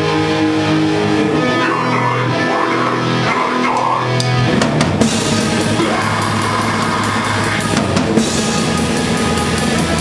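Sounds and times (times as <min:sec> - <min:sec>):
metal band playing live: 0:00.0 - 0:10.0
drum kit hits: 0:04.2 - 0:10.0.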